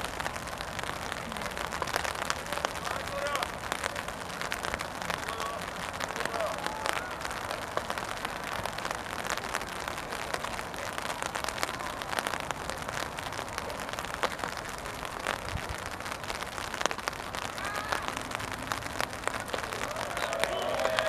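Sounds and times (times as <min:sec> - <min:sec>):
raindrops ticking: 0:00.0 - 0:21.0
steady rainfall: 0:00.0 - 0:21.0.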